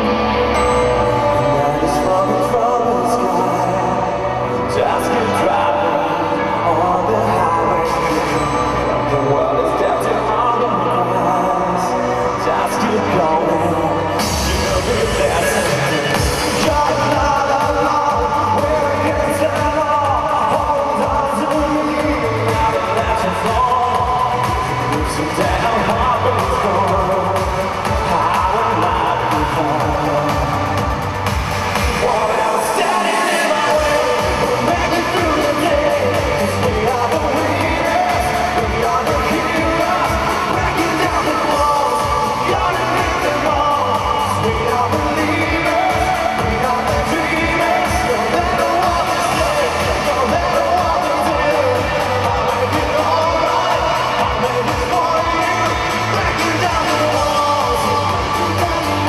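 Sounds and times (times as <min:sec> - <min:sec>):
pop-rock song with male vocal: 0:00.0 - 0:59.0.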